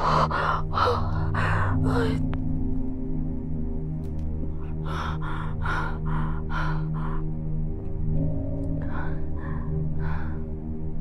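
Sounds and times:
low steady drone: 0:00.0 - 0:11.0.

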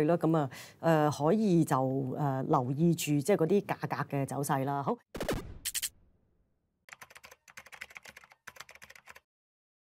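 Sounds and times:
faint keyboard typing: 0:06.9 - 0:09.3.

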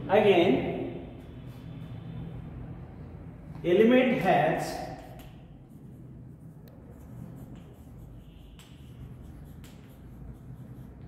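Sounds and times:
low room hum: 0:00.0 - 0:11.0
chalk scratching on blackboard: 0:04.9 - 0:11.0
chalk tapping on blackboard: 0:04.9 - 0:11.0.

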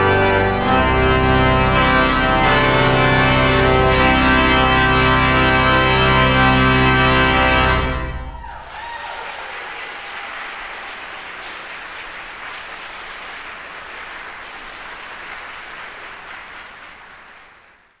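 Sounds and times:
pipe organ chord ringing: 0:00.0 - 0:08.3
congregation applauding: 0:08.3 - 0:18.0.

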